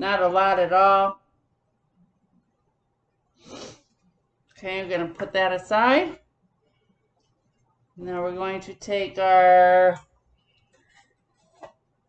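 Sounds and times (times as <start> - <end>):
woman speaking: 0.0 - 1.2, 4.6 - 6.2, 8.0 - 10.0
faint steady hum: 0.0 - 12.0.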